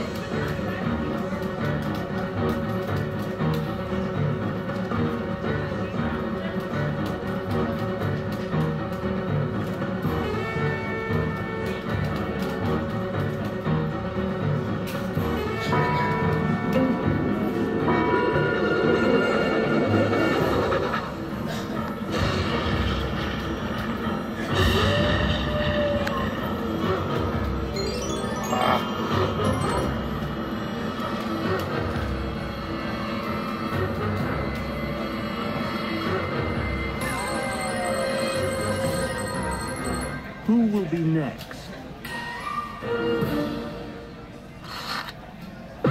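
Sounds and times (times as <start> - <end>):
spooky slot machine music: 0.0 - 41.2, 41.8 - 44.4
slot machine bonus music: 27.4 - 31.2, 36.9 - 40.5.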